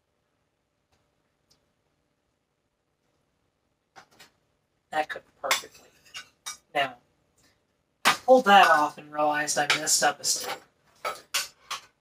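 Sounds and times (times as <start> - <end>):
utensil clinking on steel pot: 8.1 - 9.0, 9.6 - 12.0.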